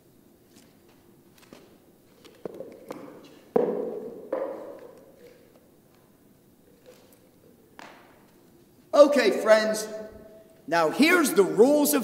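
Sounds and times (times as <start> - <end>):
plastic cones knocking on floor: 2.3 - 5.5.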